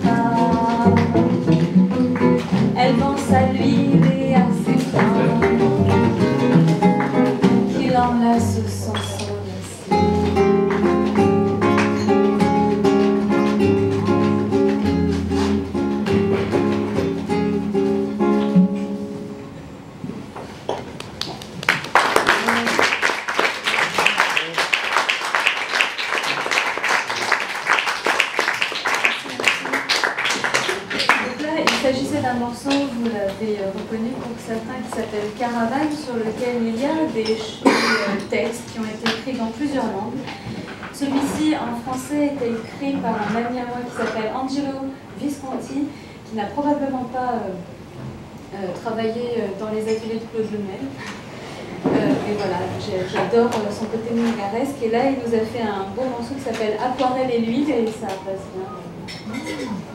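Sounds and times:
woman singing: 0:00.0 - 0:06.2, 0:07.6 - 0:09.5
bowed cello: 0:00.0 - 0:11.8
classical guitar: 0:00.0 - 0:21.0, 0:30.3 - 0:45.7
audience applauding: 0:20.8 - 0:31.8.

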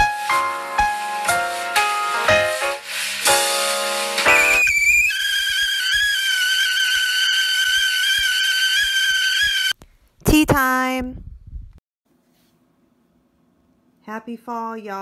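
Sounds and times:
piano intro music: 0:00.0 - 0:04.6
kettle whistling: 0:04.2 - 0:09.8.

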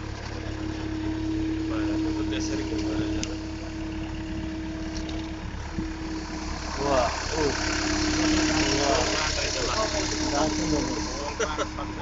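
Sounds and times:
loader engine running: 0:00.0 - 0:12.0.

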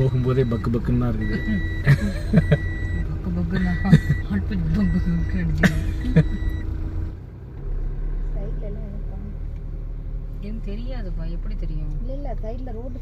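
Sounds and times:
high electronic beep: 0:00.0 - 0:05.4
car running hum: 0:00.0 - 0:13.0
voices and laughter: 0:01.2 - 0:06.6.

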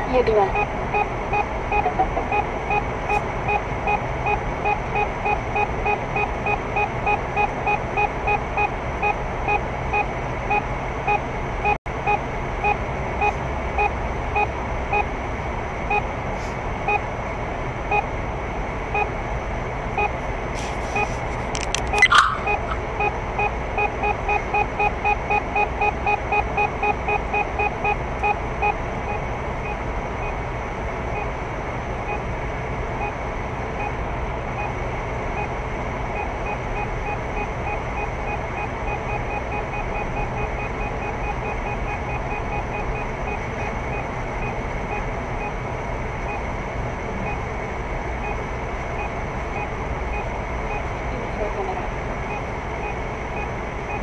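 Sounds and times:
warning device beeping: 0:00.0 - 0:15.2, 0:15.9 - 0:16.1, 0:18.9 - 0:19.2, 0:20.0 - 0:20.2, 0:20.9 - 0:30.4, 0:34.6 - 0:35.6, 0:36.2 - 0:45.6, 0:46.3 - 0:46.5, 0:47.2 - 0:47.5, 0:48.2 - 0:51.6, 0:52.3 - 0:54.0
car road noise: 0:00.0 - 0:26.1
short electronic chirp: 0:21.9 - 0:22.8.

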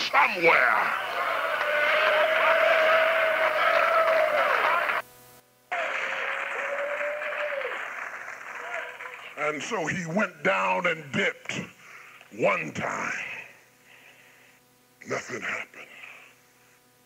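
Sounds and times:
people clapping: 0:00.9 - 0:05.1, 0:05.7 - 0:09.7.

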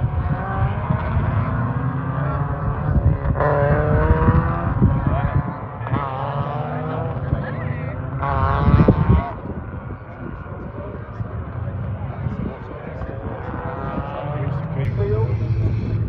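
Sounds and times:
race car engines: 0:00.0 - 0:16.0
steady low rumble: 0:08.8 - 0:16.0.

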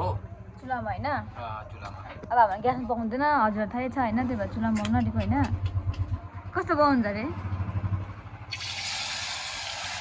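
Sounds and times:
fish sizzling in hot oil: 0:08.5 - 0:10.0.

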